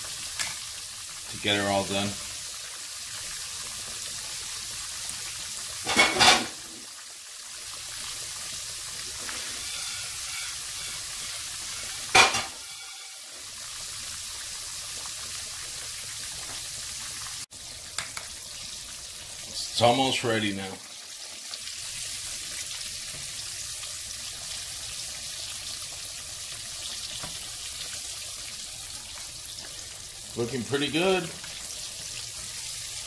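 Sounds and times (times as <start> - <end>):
fish sizzling in hot oil: 0.0 - 33.0.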